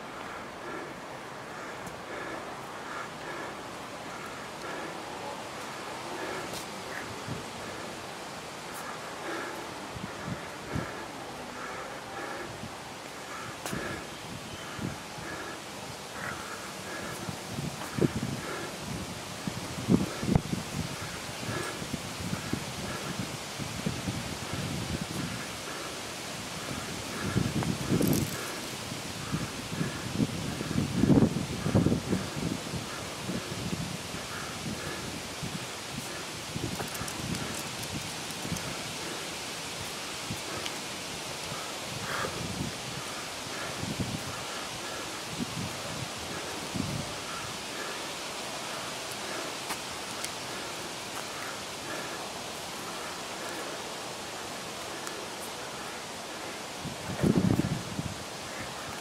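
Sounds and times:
rustling leaves: 0:00.0 - 0:59.0
wind: 0:00.0 - 0:59.0.

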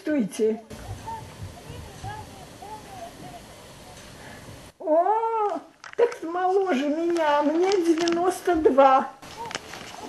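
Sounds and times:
faint hiss: 0:00.0 - 0:10.0
elderly woman exclaiming: 0:04.8 - 0:07.0.

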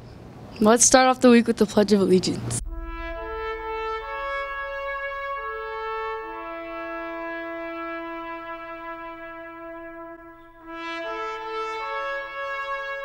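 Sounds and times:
slow brass chords: 0:02.6 - 0:13.0.

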